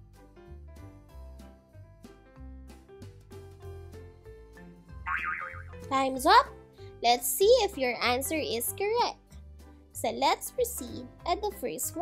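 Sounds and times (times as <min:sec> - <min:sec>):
background music with bass: 0:00.0 - 0:06.8
warbling cartoon sound effect: 0:05.1 - 0:05.8.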